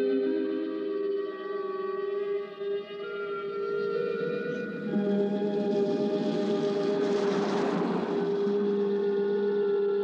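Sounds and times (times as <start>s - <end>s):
low sustained horror chords: 3.4s - 10.0s.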